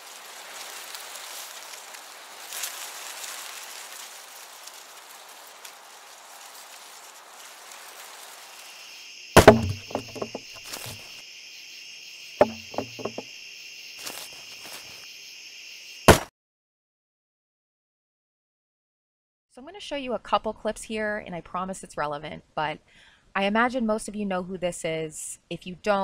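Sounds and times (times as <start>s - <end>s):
soft rain-like hiss: 0.0s - 9.4s
crickets chirping: 0.0s - 16.2s
heavy wooden thuds: 9.4s - 11.0s, 12.4s - 13.2s, 16.1s - 16.3s
light knocks: 9.4s - 11.0s, 12.4s - 13.2s.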